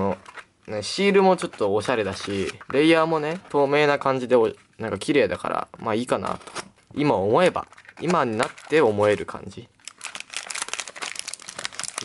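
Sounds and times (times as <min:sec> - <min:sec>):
foil wrappers crinkling: 0:07.4 - 0:12.0.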